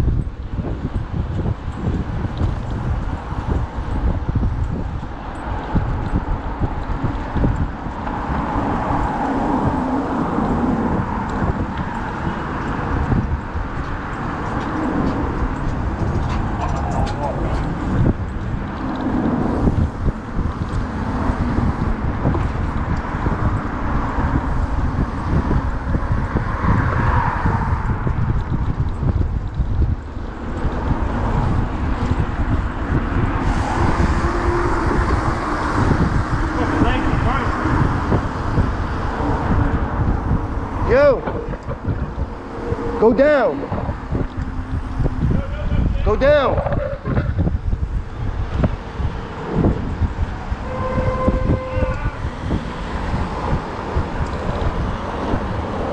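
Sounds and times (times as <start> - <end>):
road noise: 0.0 - 55.9
wind buffeting microphone: 0.0 - 55.9
indistinct voices: 14.0 - 18.1, 33.4 - 47.8.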